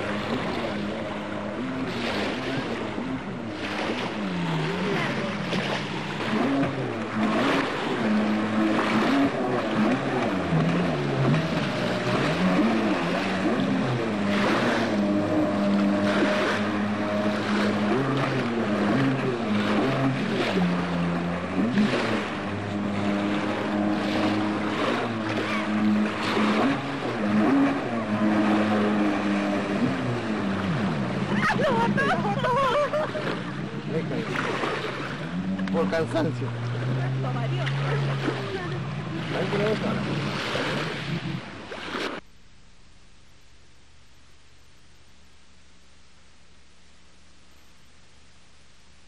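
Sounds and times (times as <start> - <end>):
jet ski engine revving: 0.0 - 42.3
water rushing and spraying: 0.0 - 42.3.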